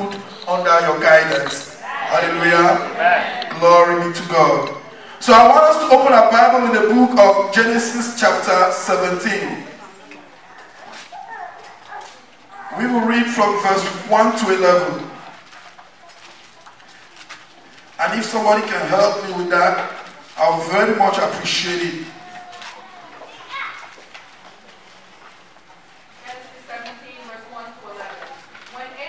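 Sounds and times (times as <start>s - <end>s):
louder voice: 0.0s - 4.5s.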